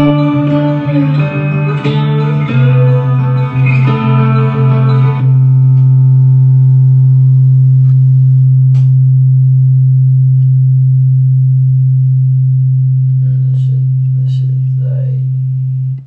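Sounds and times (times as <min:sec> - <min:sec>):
guitar strumming: 0:00.0 - 0:16.0
low bass note held: 0:00.0 - 0:16.0.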